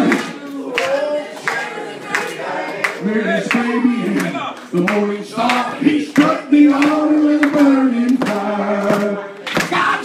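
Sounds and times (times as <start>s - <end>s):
sharp hand claps: 0.0s - 9.8s
voices singing along: 0.0s - 10.0s
man singing into microphone: 3.0s - 10.0s.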